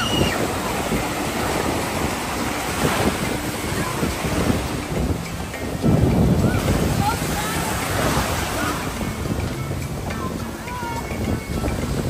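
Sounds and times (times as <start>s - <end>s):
ocean surf breaking: 0.0s - 12.0s
wind buffeting microphone: 0.0s - 12.0s.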